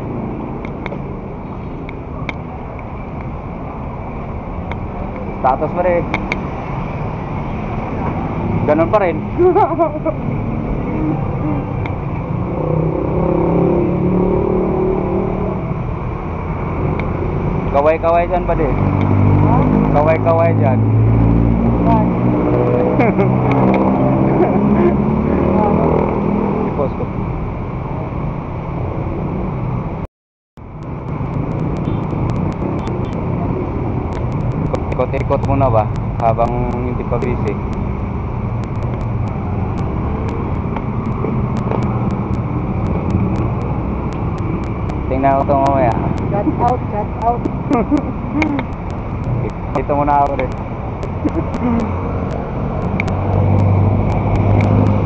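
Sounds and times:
street traffic: 0.0s - 55.0s.

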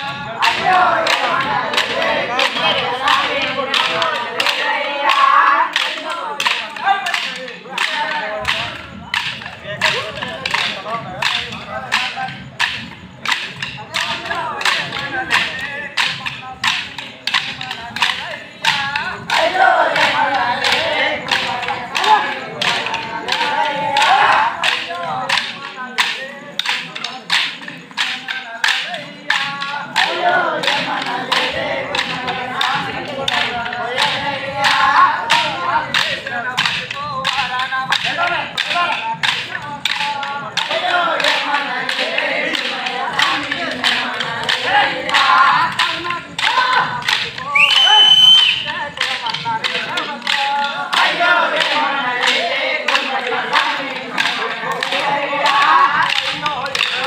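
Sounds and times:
men singing: 0.0s - 57.0s
wooden sticks clacking: 0.0s - 57.0s.

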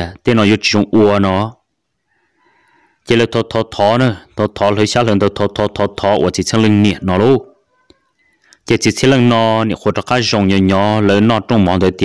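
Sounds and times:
person speaking: 0.0s - 1.6s, 3.1s - 12.0s
distant rooster crowing: 2.0s - 3.1s.

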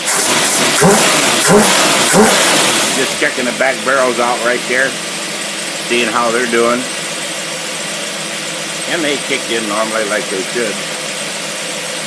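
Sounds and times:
air rushing through carburetor: 0.0s - 3.1s
engine revving hard: 0.0s - 4.9s.

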